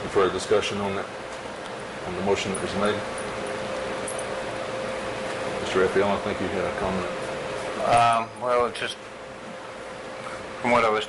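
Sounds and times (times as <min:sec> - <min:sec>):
thin steady hum: 0:00.0 - 0:11.0.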